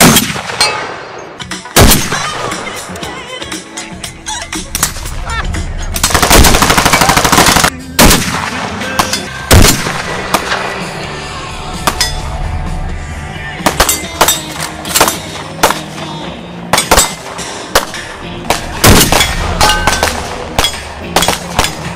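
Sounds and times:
rifle shots with ringing tail: 0.0s - 2.5s, 6.0s - 10.8s, 16.7s - 21.8s
background music: 0.0s - 21.9s.

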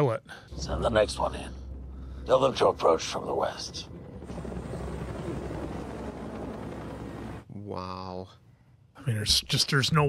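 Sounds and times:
helicopter engine and rotor rumble: 0.5s - 7.5s.

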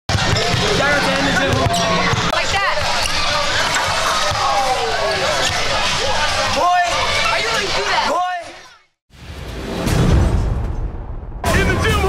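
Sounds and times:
people talking and laughing: 0.2s - 9.0s.

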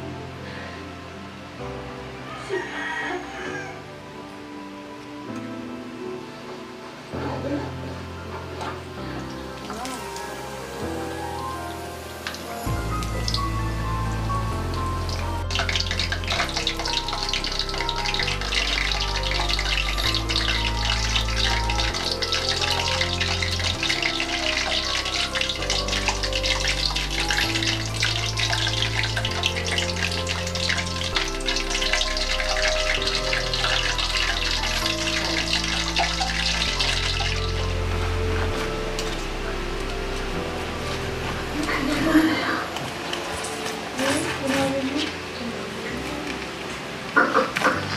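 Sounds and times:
background music: 0.0s - 47.9s
meat deep-frying in hot oil: 8.3s - 45.3s.

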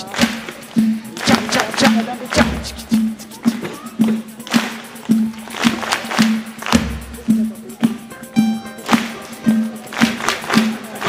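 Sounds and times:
children clapping along: 0.0s - 11.0s
live band music: 0.0s - 11.0s.

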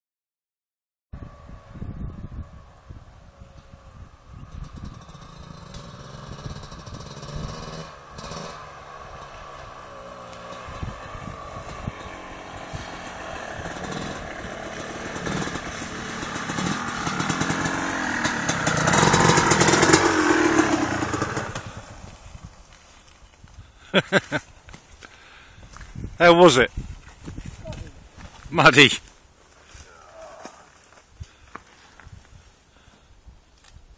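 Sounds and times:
off-road motorcycle engine: 1.2s - 33.1s.

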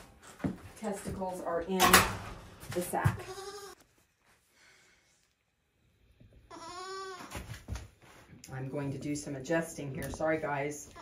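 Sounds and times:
goat kid bleating: 3.2s - 3.8s, 6.5s - 7.4s.

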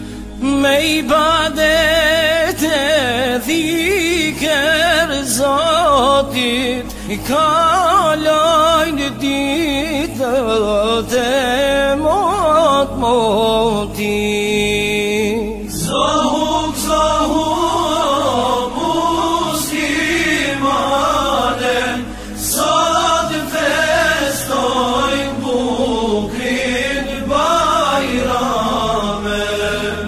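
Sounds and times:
group of voices chanting: 15.8s - 30.0s.

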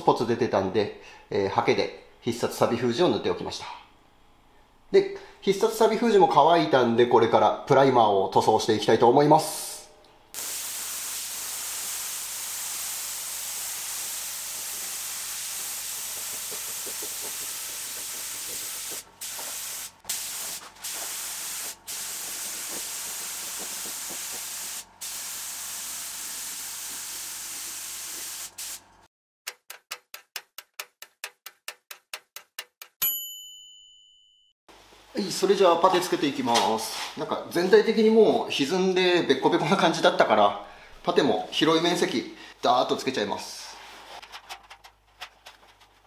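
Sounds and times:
spray gun hissing: 10.4s - 28.9s
ringing ding: 33.0s - 34.5s.

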